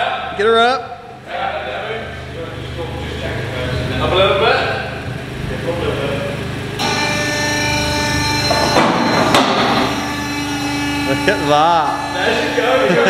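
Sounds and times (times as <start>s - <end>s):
electric pump motor humming: 2.0s - 13.0s.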